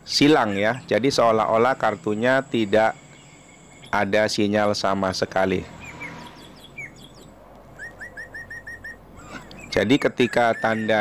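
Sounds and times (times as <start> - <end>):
small birds chirping: 0.0 - 11.0
bird repeating identical notes: 0.1 - 11.0.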